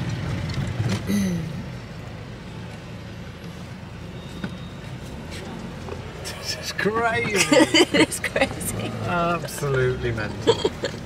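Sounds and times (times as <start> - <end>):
road noise: 0.0 - 11.0
van engine rumble: 0.0 - 11.0.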